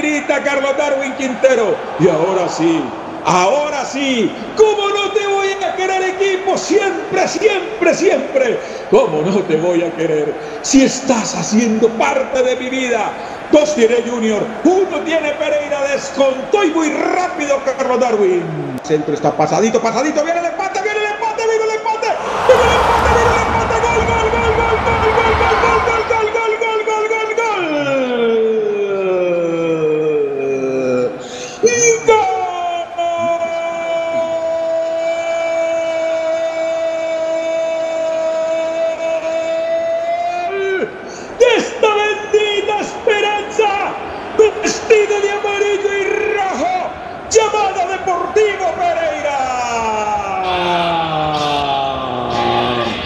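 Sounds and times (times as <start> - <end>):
stadium crowd cheering: 0.0 - 13.1, 21.7 - 28.3.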